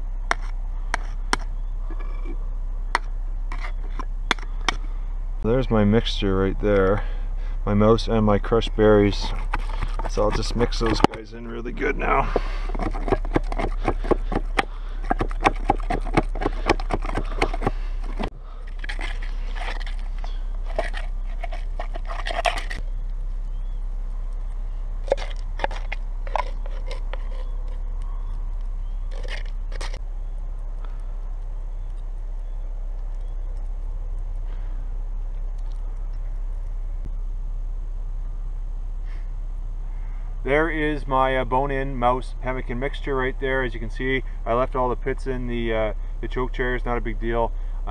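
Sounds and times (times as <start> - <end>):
steady low hum: 0.0 - 47.9
pestle crunching in a tin can: 9.1 - 11.3, 12.1 - 23.1, 25.0 - 30.0
stick scraping and tapping can: 12.2 - 22.8, 25.1 - 27.8.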